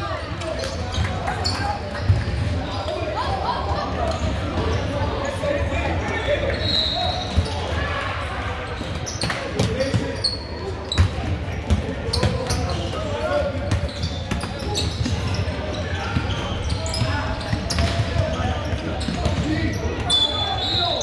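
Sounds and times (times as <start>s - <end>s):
chatter of people: 0.0s - 21.0s.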